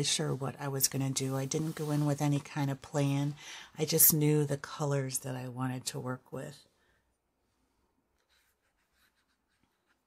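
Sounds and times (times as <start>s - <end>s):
soft brush scratches: 0.0s - 4.0s, 7.6s - 10.0s.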